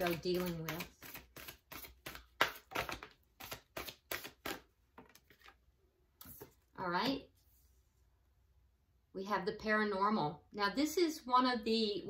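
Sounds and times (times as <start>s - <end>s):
cards being shuffled: 0.0s - 5.6s.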